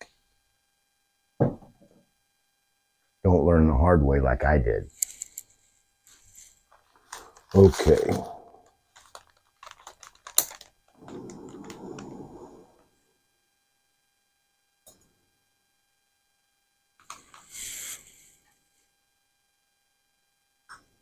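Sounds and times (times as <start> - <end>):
hissy rustle: 11.0 - 12.9.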